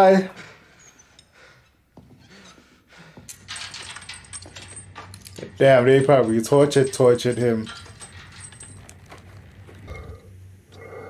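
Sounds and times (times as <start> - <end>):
man panting: 0.3 - 3.4
rattling clinking noise: 3.2 - 10.1.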